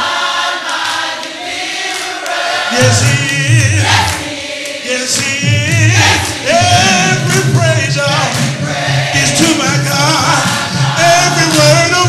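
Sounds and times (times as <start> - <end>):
voices singing along: 0.0 - 12.0
man singing into a microphone: 2.7 - 4.1, 4.8 - 12.0.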